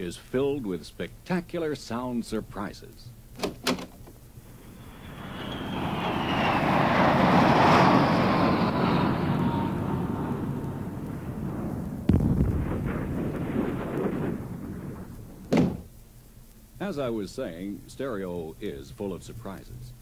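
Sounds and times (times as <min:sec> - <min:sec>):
jet airplane flying past: 0:04.3 - 0:15.2
thump: 0:15.5 - 0:15.9.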